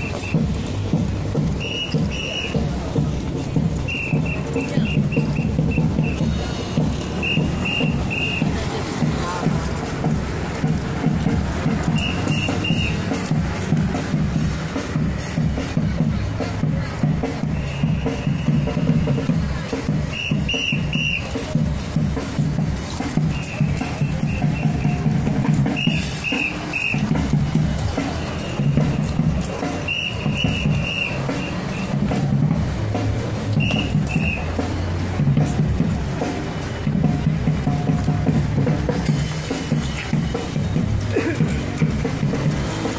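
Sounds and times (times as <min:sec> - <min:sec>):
whistle pips: 0:00.0 - 0:00.5, 0:01.6 - 0:02.6, 0:03.8 - 0:06.3, 0:07.2 - 0:08.5, 0:11.9 - 0:13.0, 0:17.6 - 0:19.2, 0:20.1 - 0:21.4, 0:23.3 - 0:25.1, 0:25.7 - 0:27.1, 0:29.9 - 0:32.0, 0:33.5 - 0:34.5.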